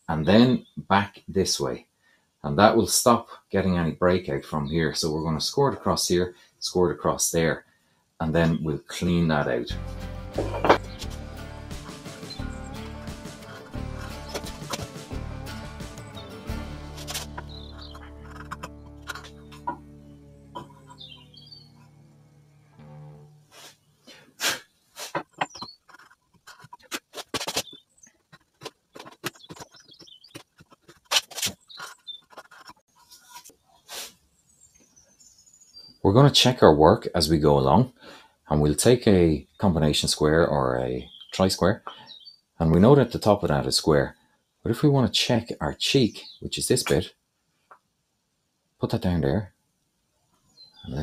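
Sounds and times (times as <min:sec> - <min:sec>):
background music: 0:09.7 - 0:21.3
chisel clicking and scraping wood: 0:16.9 - 0:19.8, 0:25.1 - 0:33.5.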